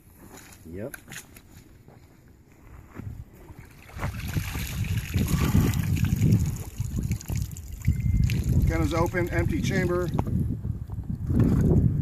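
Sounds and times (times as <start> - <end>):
water splashing and sloshing: 3.4 - 9.1.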